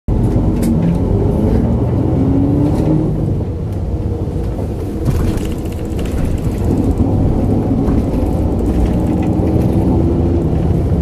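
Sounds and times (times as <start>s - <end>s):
vehicle rumble from inside: 0.1s - 11.0s.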